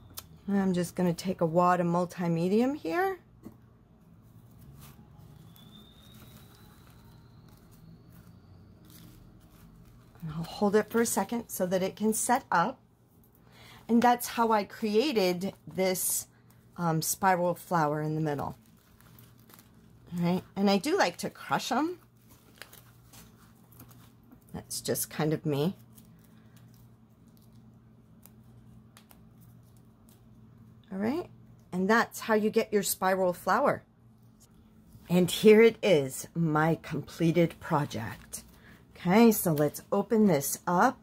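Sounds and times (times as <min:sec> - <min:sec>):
room hum: 0:00.0 - 0:41.0
faint thin whine: 0:03.5 - 0:12.7
paper crinkling: 0:04.1 - 0:11.5, 0:16.4 - 0:24.8, 0:25.6 - 0:30.4
fingers handling paper: 0:04.2 - 0:12.1.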